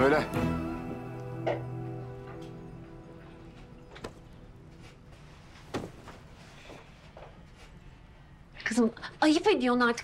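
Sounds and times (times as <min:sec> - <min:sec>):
soft footsteps: 0:02.2 - 0:08.1.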